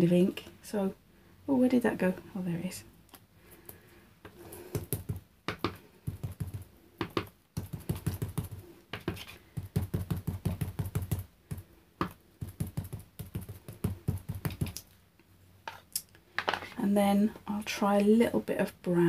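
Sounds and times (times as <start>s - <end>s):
foam tool tapping on paper: 4.7s - 14.8s.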